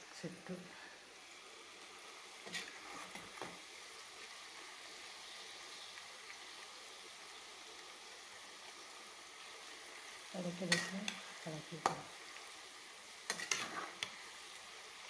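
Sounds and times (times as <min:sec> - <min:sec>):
food sizzling in hot oil: 0:00.0 - 0:15.0
metal ladle scraping a pan: 0:02.4 - 0:03.5, 0:10.7 - 0:11.3, 0:13.2 - 0:14.3.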